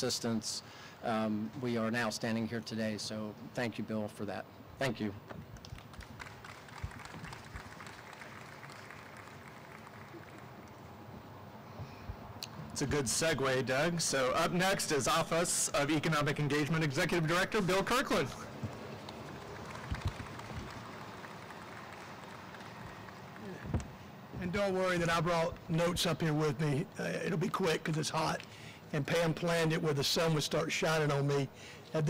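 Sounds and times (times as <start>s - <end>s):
distant traffic hiss: 0.0s - 32.0s
audience applauding: 5.7s - 10.9s, 19.1s - 23.6s.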